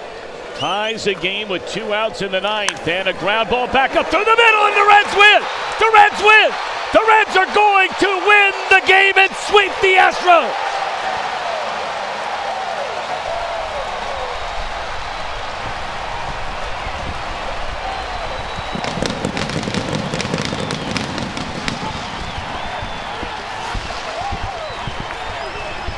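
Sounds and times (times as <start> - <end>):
crowd cheering: 0.0 - 25.9
people clapping: 18.8 - 25.9.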